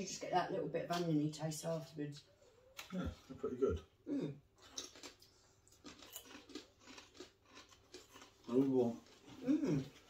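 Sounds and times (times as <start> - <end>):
crisps being chewed: 4.6 - 10.0.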